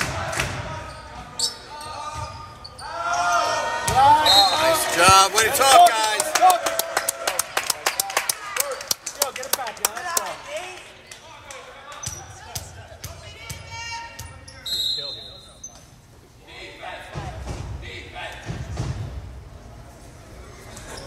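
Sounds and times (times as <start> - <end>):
players shouting: 0.0 - 7.5
referee whistle blast: 4.1 - 5.2, 14.6 - 15.6
players clapping rapidly: 5.0 - 12.0.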